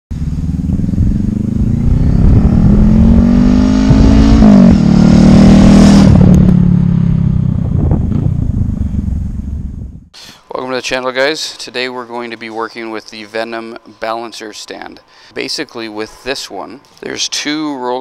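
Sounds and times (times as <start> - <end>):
motorcycle engine accelerating: 0.1 - 10.1.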